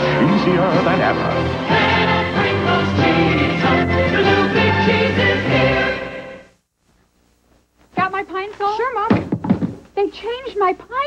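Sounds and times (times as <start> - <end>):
commercial jingle: 0.0 - 6.5
woman speaking: 8.0 - 9.2, 10.0 - 11.0
dull thuds: 9.1 - 9.9.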